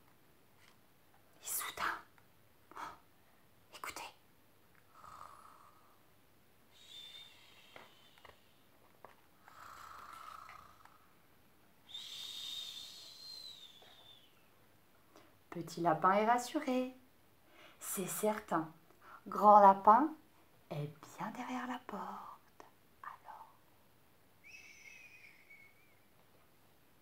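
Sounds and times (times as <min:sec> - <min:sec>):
woman imitating snoring: 0:04.9 - 0:06.0, 0:09.4 - 0:11.1
short breathy sounds: 0:06.7 - 0:08.6, 0:11.9 - 0:14.4.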